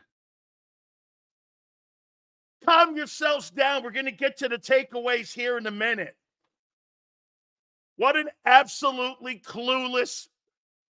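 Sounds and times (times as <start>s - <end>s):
person speaking: 8.0s - 10.1s.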